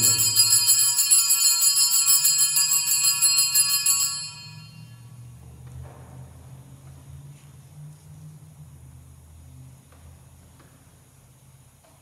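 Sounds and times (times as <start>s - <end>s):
altar bells jingling: 0.0s - 5.0s.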